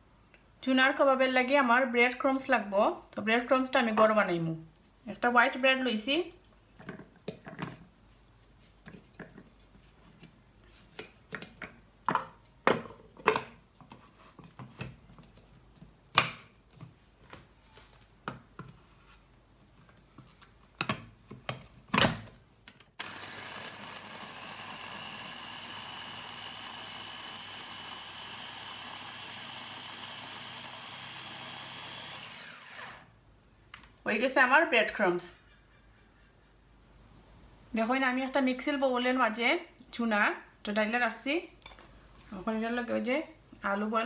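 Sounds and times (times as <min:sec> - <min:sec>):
food chopper motor whine: 0:23.0 - 0:33.1.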